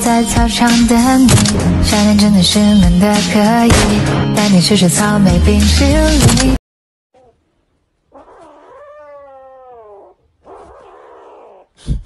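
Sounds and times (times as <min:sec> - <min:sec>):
cat yowling: 0:08.1 - 0:11.7.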